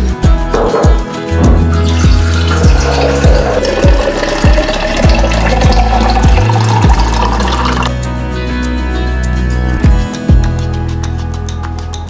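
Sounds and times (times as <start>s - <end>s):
background music with deep drum beat: 0.0s - 12.0s
water pouring into glass jar: 1.7s - 8.0s.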